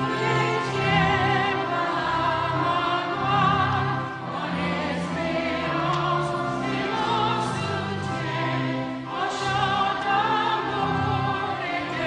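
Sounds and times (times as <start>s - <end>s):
choir singing long held notes: 0.0s - 12.0s.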